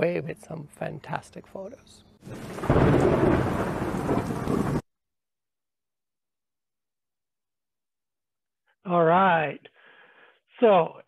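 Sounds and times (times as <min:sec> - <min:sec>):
loud thunder-like rumbling: 0:02.3 - 0:04.8.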